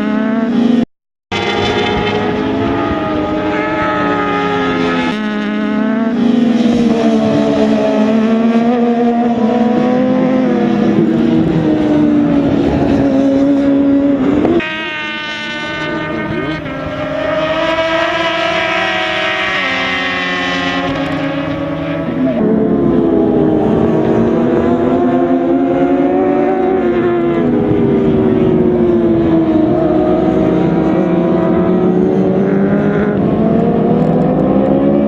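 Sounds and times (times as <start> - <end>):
racing motorbike engines passing: 0.0 - 35.0.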